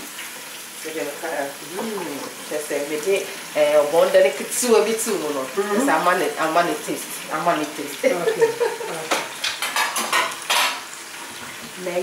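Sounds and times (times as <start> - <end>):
metal pots and utensils clattering: 8.3 - 10.9.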